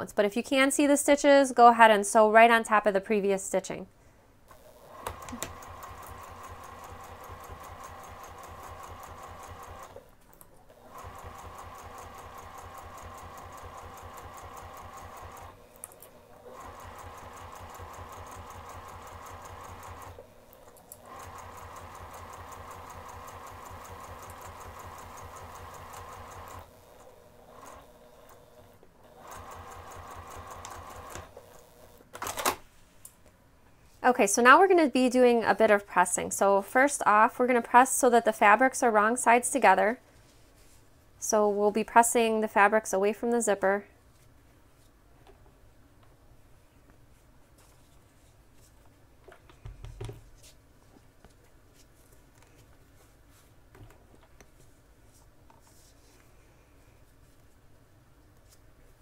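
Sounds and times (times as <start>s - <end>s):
sewing machine stitching: 4.5s - 32.5s.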